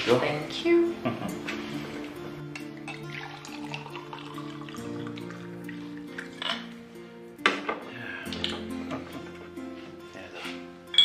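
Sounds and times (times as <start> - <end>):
soft background music: 0.0 - 11.0
bottle and glass clinking: 2.5 - 4.7, 6.2 - 6.7.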